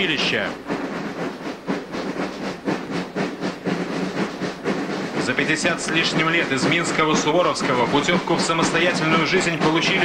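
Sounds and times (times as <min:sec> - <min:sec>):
marching snare drums: 0:00.0 - 0:10.0.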